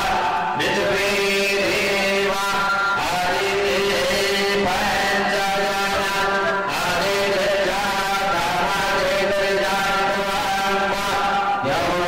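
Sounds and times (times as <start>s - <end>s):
many voices chanting: 0.0s - 12.0s.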